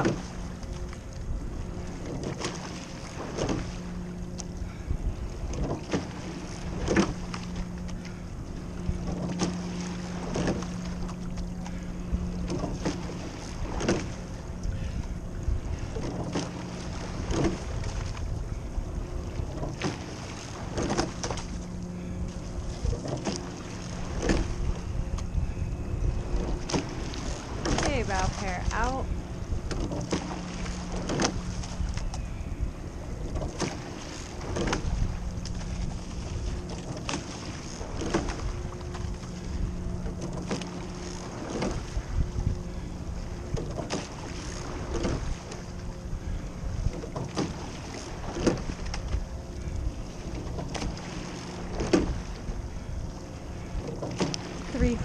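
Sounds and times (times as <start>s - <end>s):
steady low hum: 0.0s - 55.0s
water rushing along hull: 0.0s - 55.0s
wind on microphone: 0.0s - 55.0s.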